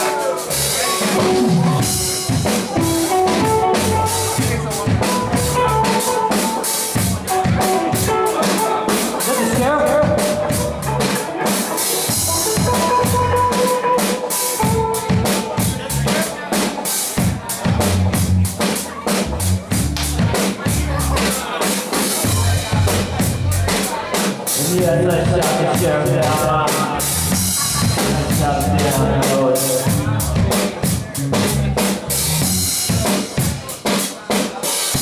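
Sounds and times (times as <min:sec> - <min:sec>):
electric guitar: 0:00.0 - 0:18.4
drum kit rimshots and bass drum: 0:00.0 - 0:35.0
reggae band playing: 0:00.0 - 0:35.0.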